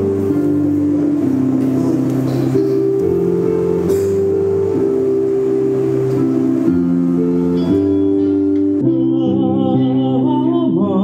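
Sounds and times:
electronic keyboard sustained chords: 0.0 - 11.0.

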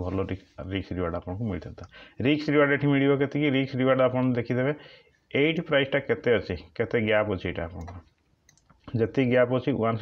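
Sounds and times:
man speaking: 0.0 - 8.2, 8.8 - 10.0
computer mouse clicks: 7.8 - 8.8.

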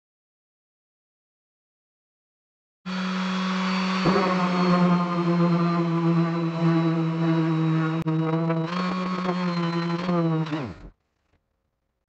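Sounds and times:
orbital sander humming: 2.9 - 10.9
sander winding down: 2.9 - 11.0.

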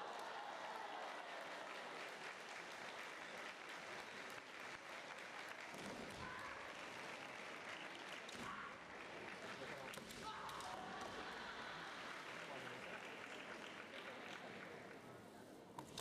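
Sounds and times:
spectators applauding: 0.0 - 15.2.

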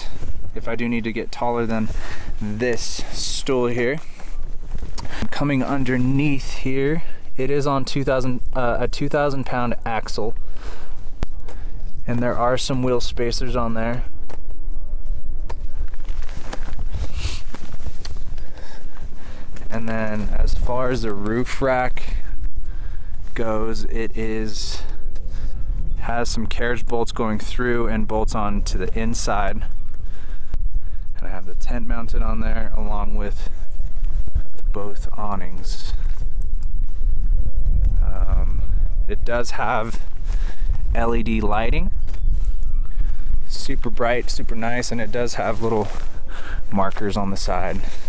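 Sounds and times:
wind rumbling on microphone: 0.0 - 48.0.

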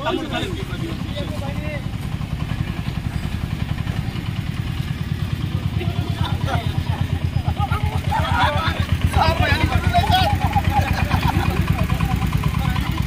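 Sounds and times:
people talking: 0.0 - 2.0, 5.4 - 13.0
motorcycle engine idling: 0.0 - 13.0.

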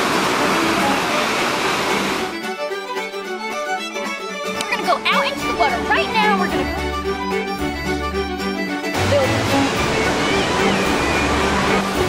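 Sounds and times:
ocean surf rushing: 0.0 - 2.5, 8.9 - 12.0
faint music: 4.4 - 12.0.

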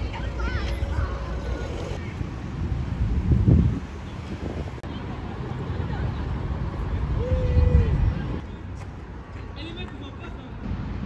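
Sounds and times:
wind on microphone: 0.0 - 5.4, 7.0 - 8.5.

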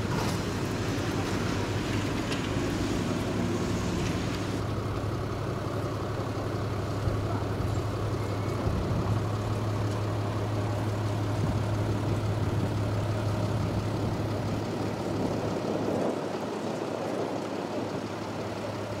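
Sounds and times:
engine idling hum: 0.0 - 19.0
outdoor background noise: 0.0 - 19.0.

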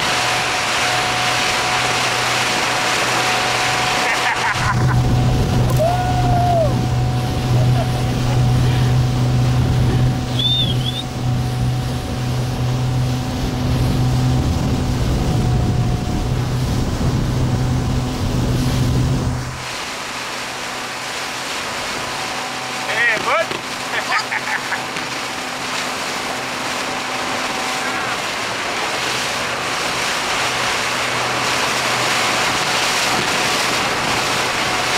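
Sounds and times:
outboard engine running: 0.0 - 34.9
rushing water: 0.0 - 34.9
wind noise: 4.6 - 19.7.

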